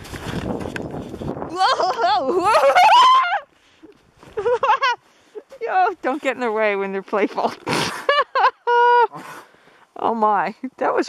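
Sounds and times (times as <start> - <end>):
woman yelping: 1.5 - 3.5.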